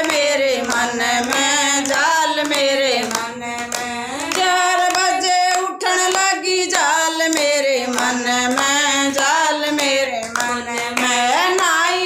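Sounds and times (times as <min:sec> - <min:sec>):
hand clapping: 0:00.0 - 0:12.0
women singing together: 0:00.0 - 0:12.0.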